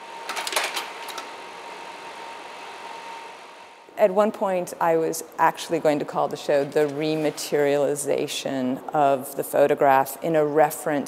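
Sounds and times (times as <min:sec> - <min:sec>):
projector cooling fan whirring: 0:00.0 - 0:08.2.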